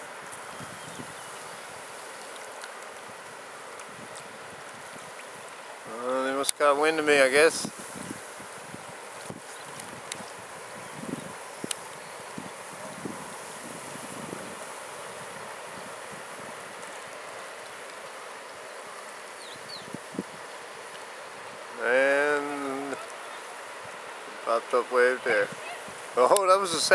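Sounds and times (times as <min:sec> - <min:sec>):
flowing river water: 0:00.0 - 0:26.9
light breeze: 0:00.0 - 0:26.9.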